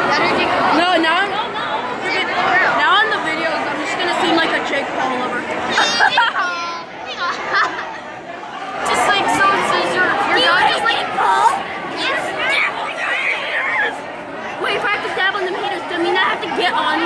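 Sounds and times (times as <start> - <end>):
voices in large room: 0.0 - 17.0
young voices chattering: 0.0 - 17.0.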